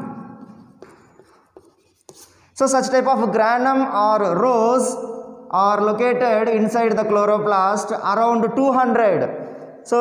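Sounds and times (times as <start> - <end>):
chalk on blackboard: 0.0 - 2.6.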